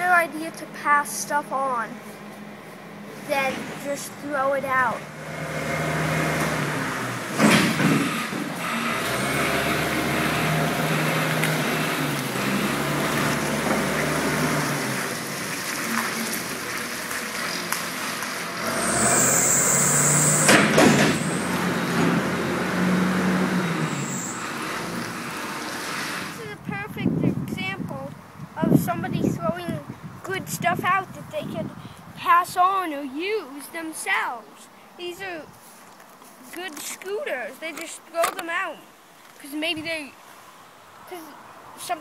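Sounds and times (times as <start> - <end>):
diesel engine revving: 2.8 - 26.9
loud bangs: 18.6 - 22.4.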